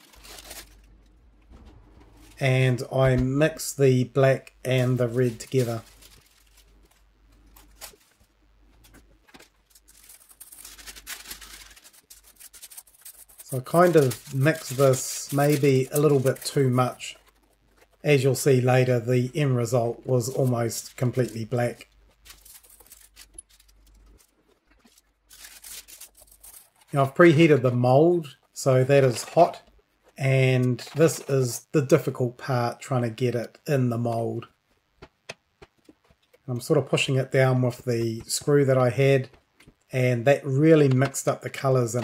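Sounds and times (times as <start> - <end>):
baking paper and gloves rustling: 0.0 - 1.2, 3.8 - 31.3
small clicks and crackles: 5.2 - 18.1, 20.3 - 27.0.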